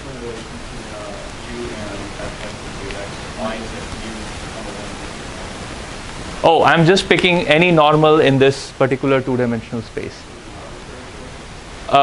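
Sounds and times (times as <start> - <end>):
faint distant voice: 0.0 - 5.7
room noise hiss: 0.0 - 12.0.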